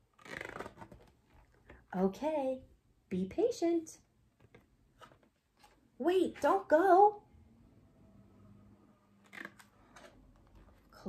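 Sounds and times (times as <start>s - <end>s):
book page turning: 0.0s - 1.8s, 4.4s - 5.9s, 9.2s - 10.9s
page crackling: 0.1s - 1.1s.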